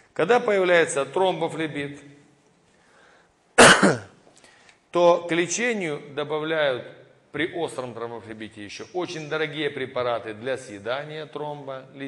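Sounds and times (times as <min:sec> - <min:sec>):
man coughing into microphone: 0:03.6 - 0:04.2.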